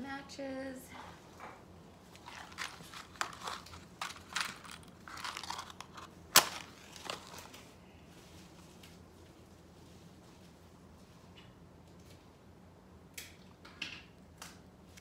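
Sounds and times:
matchbox rustling and clicking: 2.2s - 7.4s.

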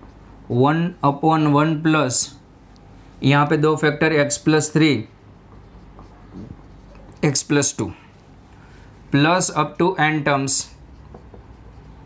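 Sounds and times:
low steady hum: 0.0s - 12.0s
marker pen writing on whiteboard: 3.6s - 8.2s, 9.4s - 12.0s.

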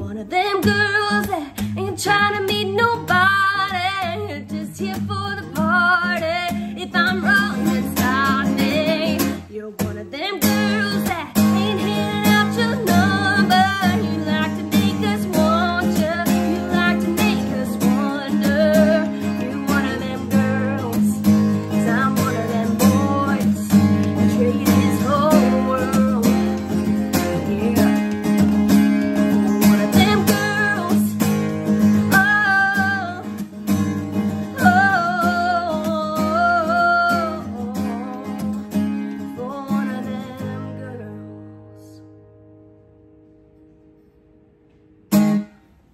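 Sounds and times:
woman singing country song: 0.0s - 42.6s
acoustic guitar strumming: 0.0s - 45.9s.

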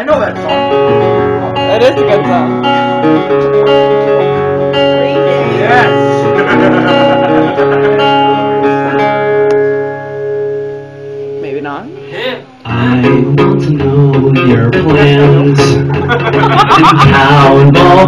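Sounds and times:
acoustic guitar strumming chords: 0.0s - 18.0s.

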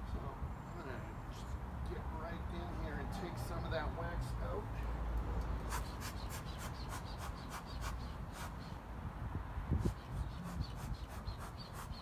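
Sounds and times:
bellows hissing puffs of air: 5.6s - 8.6s.

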